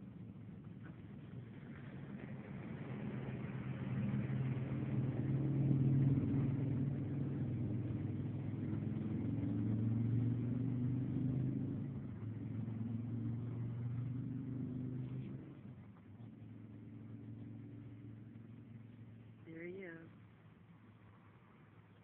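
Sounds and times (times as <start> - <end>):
motor engine running: 0.0 - 21.0.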